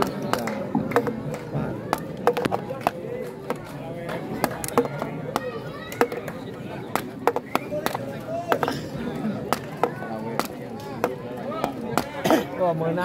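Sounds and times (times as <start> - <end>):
sharp knocks and claps: 0.0 - 8.8, 9.5 - 12.2
murmur of crowd voices: 0.0 - 13.0.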